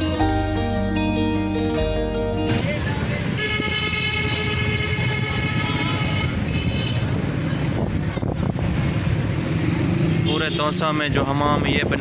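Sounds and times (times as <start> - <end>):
street traffic: 0.0 - 12.0
vehicle horn blast: 3.3 - 7.1.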